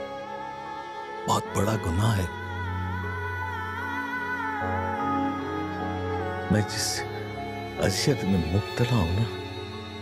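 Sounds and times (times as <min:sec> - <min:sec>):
slow sad background music: 0:00.0 - 0:10.0.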